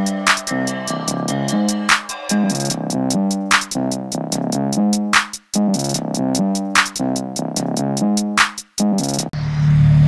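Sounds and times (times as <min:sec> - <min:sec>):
electronic music with drum-machine beat: 0:00.0 - 0:09.4.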